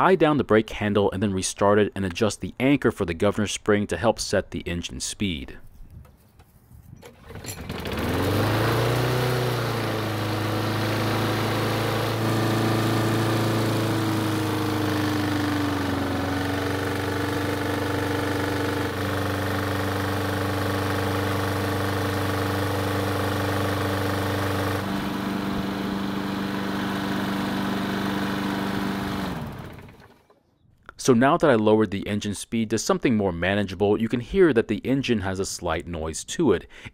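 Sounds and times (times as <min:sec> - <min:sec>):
lawn mower engine running: 0:07.0 - 0:30.4.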